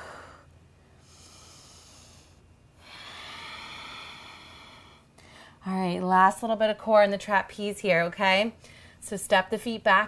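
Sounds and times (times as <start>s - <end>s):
woman breathing: 0.0s - 5.7s, 8.6s - 9.0s.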